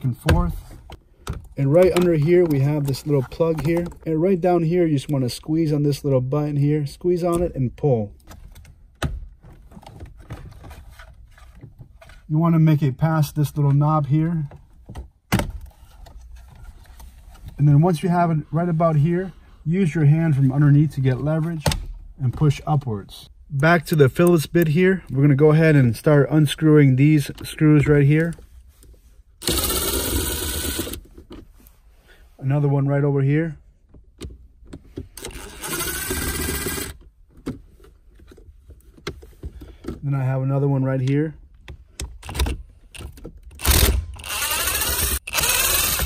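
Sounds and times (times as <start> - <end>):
cordless drill motor running: 29.4 - 31.0, 35.2 - 37.0, 43.6 - 46.0.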